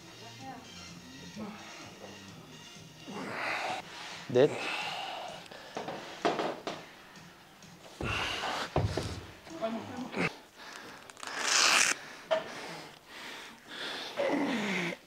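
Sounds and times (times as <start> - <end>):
man breathing heavily: 1.3 - 2.3, 3.0 - 9.5, 10.1 - 11.4, 12.0 - 15.0.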